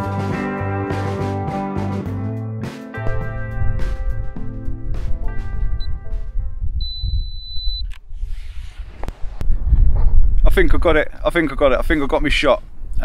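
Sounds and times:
guitar background music: 0.0s - 6.8s
low rumble: 3.0s - 10.6s
steady high beep: 5.8s - 6.0s, 6.8s - 7.8s
camera electronic beep: 6.8s - 8.0s.

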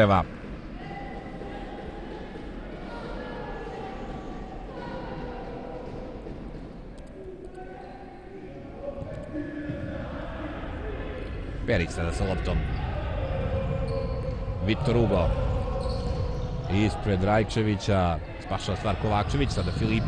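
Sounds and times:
echoing sports hall ambience: 0.0s - 20.0s
distant shouts: 7.6s - 20.0s.

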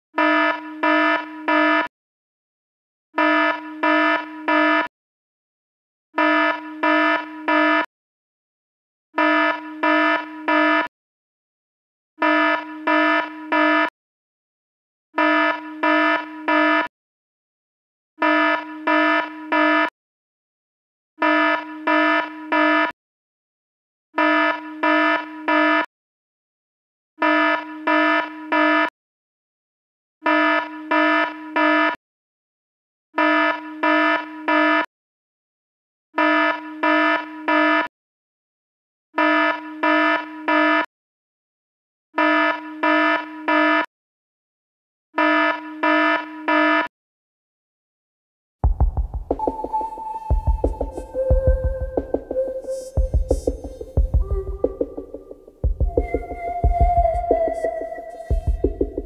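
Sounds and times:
buzzy electronic alarm beeping: 0.2s - 1.9s, 3.2s - 4.9s, 6.2s - 7.9s, 9.2s - 10.9s, 12.2s - 13.9s, 15.2s - 16.9s, 18.2s - 19.9s, 21.2s - 22.9s, 24.2s - 25.9s, 27.2s - 28.9s, 30.3s - 32.0s, 33.2s - 34.9s, 36.2s - 37.9s, 39.2s - 40.9s, 42.2s - 43.9s, 45.2s - 46.9s, 48.6s - 59.0s.

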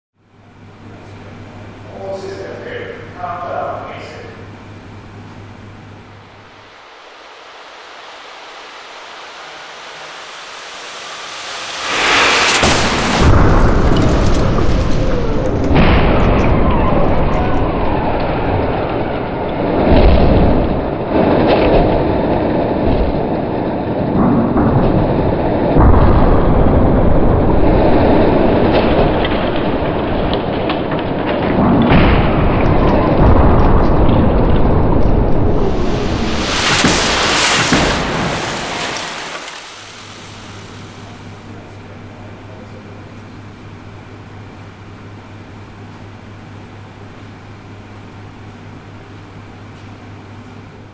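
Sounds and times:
loud dense rumble: 0.2s - 50.9s
bright rushing crunch: 0.6s - 21.5s, 22.1s - 41.6s
hiss: 6.8s - 15.6s, 35.5s - 41.7s
heavy booms: 8.9s - 45.6s.

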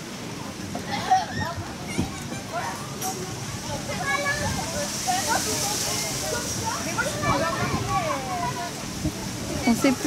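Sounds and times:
children's voices and calls: 0.5s - 10.0s.

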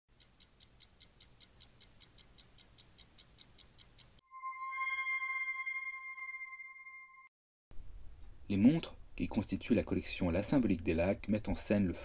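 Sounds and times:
mechanical watch ticking: 0.1s - 4.2s.

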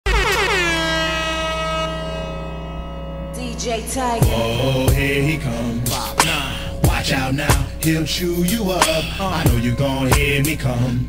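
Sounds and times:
warbling air horn blast: 0.0s - 11.0s
low bass tone: 0.1s - 11.0s.

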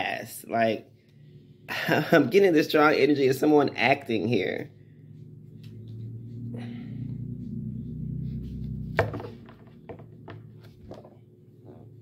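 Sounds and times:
low hum: 0.7s - 12.0s.

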